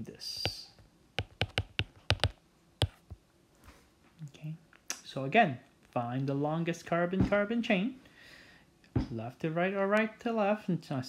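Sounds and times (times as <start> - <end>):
sharp hard taps: 1.2 - 3.0.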